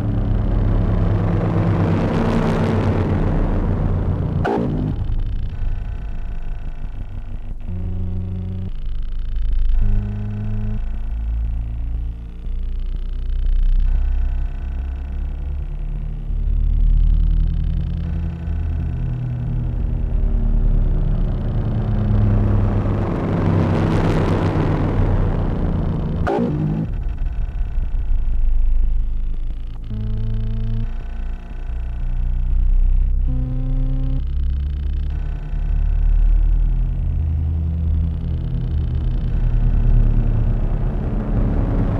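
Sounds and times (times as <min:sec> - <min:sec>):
deep rumbling bass: 0:00.0 - 0:41.9
low synthesized tones: 0:00.0 - 0:41.9.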